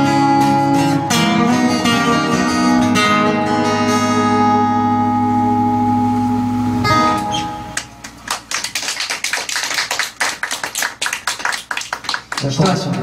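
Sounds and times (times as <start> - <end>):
acoustic guitar chord ringing: 0.0 - 8.0
audience clapping: 7.7 - 13.0.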